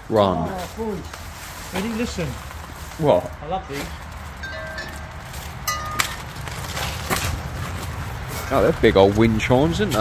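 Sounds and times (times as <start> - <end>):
wind chime ringing: 4.4 - 6.3.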